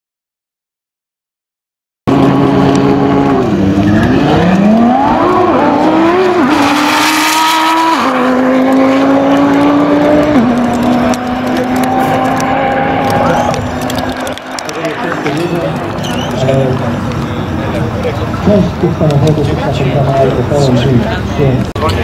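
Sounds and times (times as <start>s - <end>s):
car engine accelerating hard: 2.1s - 18.0s.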